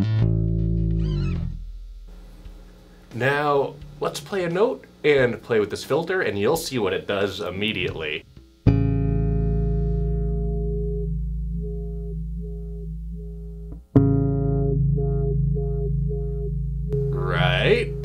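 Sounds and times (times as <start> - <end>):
electric bass wah-like sweep: 0.0 - 1.6, 9.6 - 18.0.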